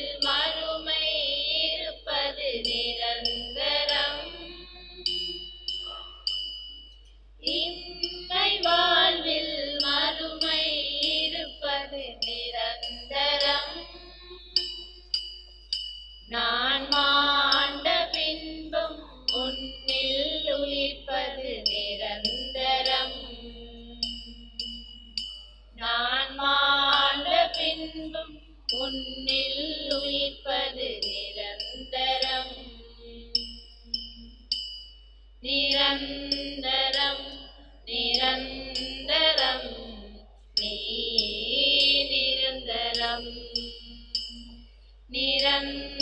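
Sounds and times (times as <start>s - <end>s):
person singing hymn: 0.0s - 6.2s, 7.4s - 14.7s, 16.3s - 24.2s, 25.8s - 33.4s, 35.4s - 44.0s, 45.2s - 46.0s
ringing high notes: 2.6s - 25.8s, 26.9s - 46.0s
held low note: 3.3s - 6.3s.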